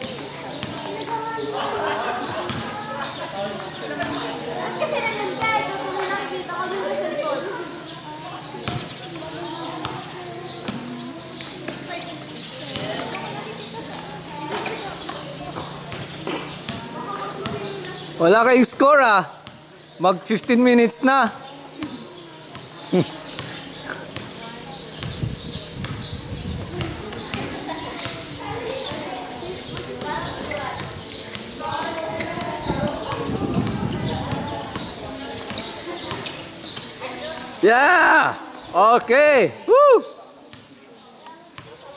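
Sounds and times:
basketball bouncing on concrete: 0.0s - 1.2s, 2.4s - 2.8s, 8.6s - 12.0s, 12.6s - 13.2s, 14.5s - 17.7s, 19.4s - 19.7s, 23.4s - 37.5s, 41.6s - 41.8s
players calling out: 0.0s - 40.7s
people's voices: 0.0s - 41.9s.

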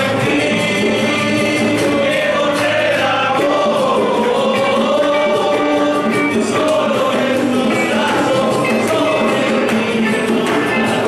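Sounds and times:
group singing a hymn: 0.0s - 11.0s
strummed acoustic guitars: 0.0s - 11.0s.

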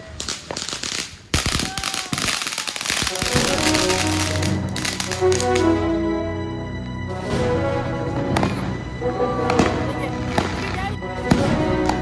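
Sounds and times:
fireworks crackling and popping: 0.0s - 5.7s, 9.4s - 12.0s
music: 2.7s - 12.0s.

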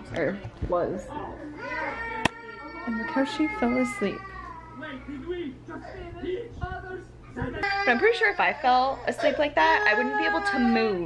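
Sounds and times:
child crying: 7.6s - 11.0s.

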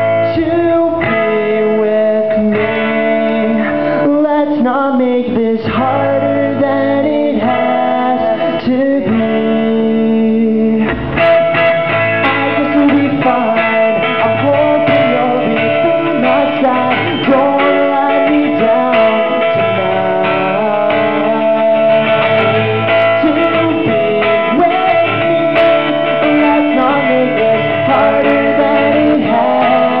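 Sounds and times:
man singing: 0.0s - 11.2s, 12.2s - 30.0s
acoustic guitar strumming: 0.0s - 30.0s.

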